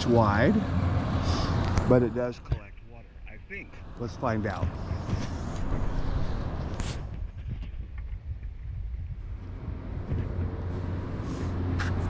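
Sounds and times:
wind buffeting microphone: 1.6s - 12.0s.

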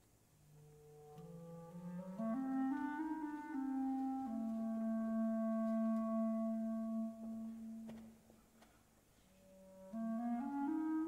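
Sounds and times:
clarinet holding low note: 0.6s - 8.1s, 9.3s - 11.0s.

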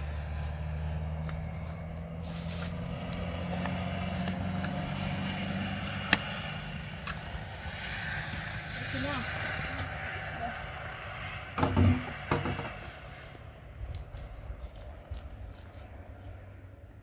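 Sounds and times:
low engine-like hum: 0.0s - 17.0s.

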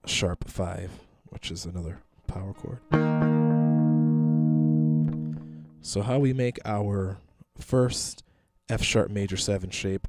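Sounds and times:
electric guitar power chord: 2.9s - 5.8s.

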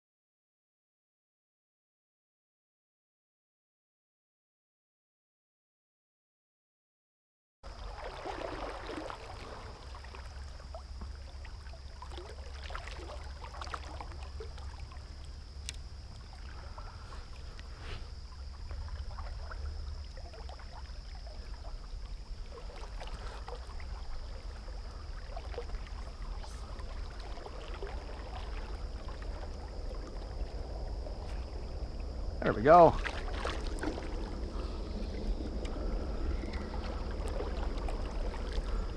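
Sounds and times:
river water lapping and trickling: 7.6s - 38.9s
faint high-pitched whine: 7.7s - 38.9s
small splashes: 7.7s - 38.9s.

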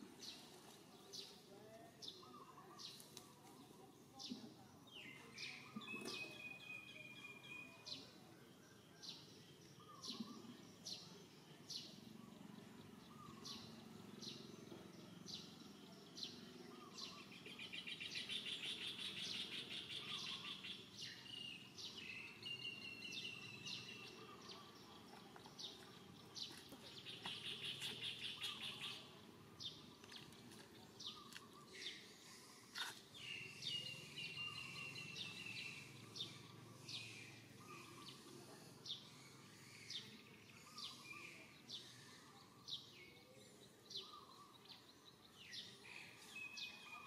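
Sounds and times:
low background noise: 0.0s - 47.0s
bird chirping: 0.2s - 47.0s.

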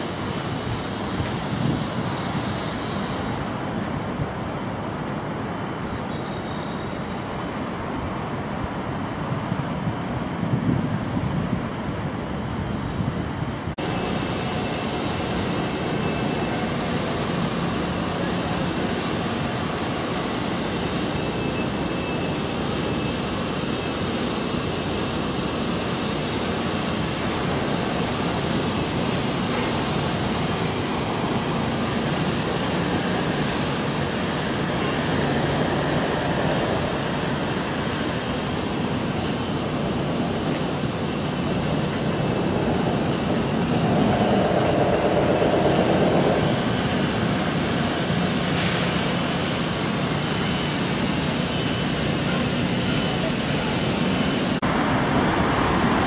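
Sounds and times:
outdoor background roar: 0.0s - 56.0s.

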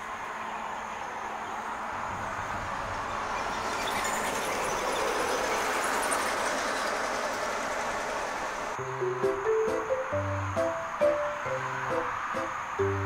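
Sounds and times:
steady outdoor rushing noise: 0.0s - 13.0s.

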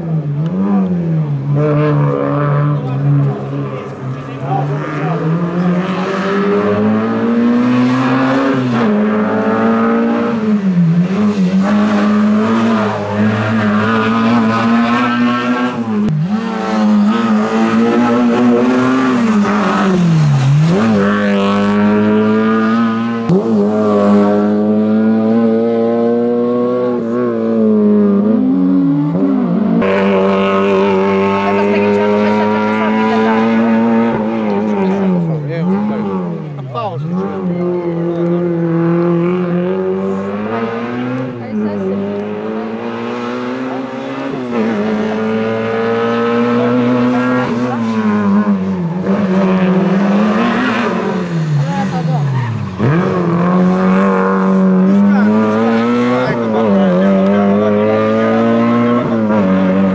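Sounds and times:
car engine revving through gears: 0.0s - 59.9s.

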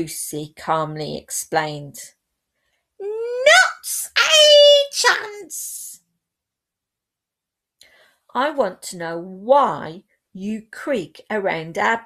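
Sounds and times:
woman in mocking character voice: 3.0s - 6.0s.

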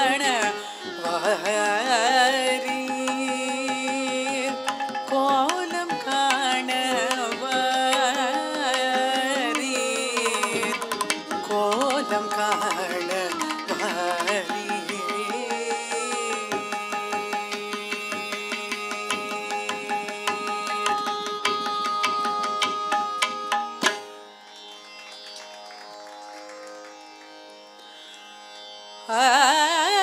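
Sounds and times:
tambura drone: 0.0s - 28.6s.

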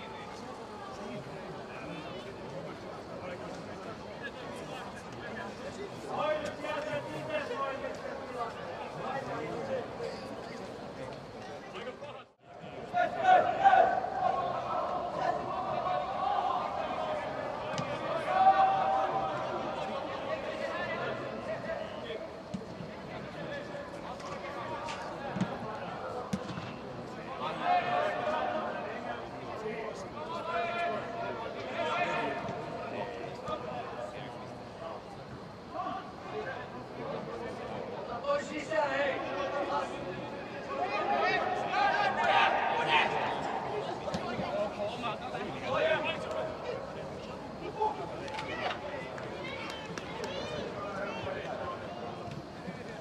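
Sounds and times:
players shouting: 12.6s - 22.1s, 38.3s - 52.2s.

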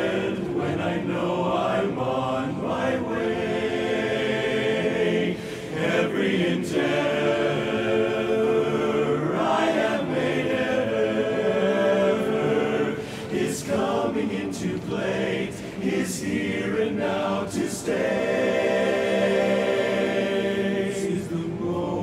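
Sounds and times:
men singing close harmony a cappella: 0.0s - 22.0s.

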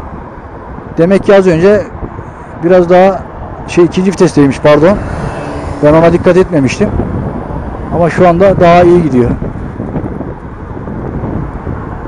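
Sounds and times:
road noise: 0.0s - 12.0s
wind rushing over microphone: 0.0s - 12.0s.

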